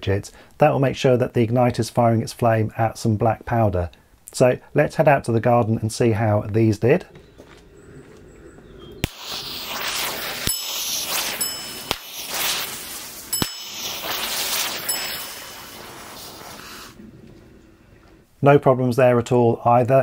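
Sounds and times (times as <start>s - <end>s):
e-matches popping: 9.0s - 17.0s
safety fuse hissing: 9.0s - 17.0s
short ringing dings: 10.4s - 12.3s, 13.3s - 16.0s.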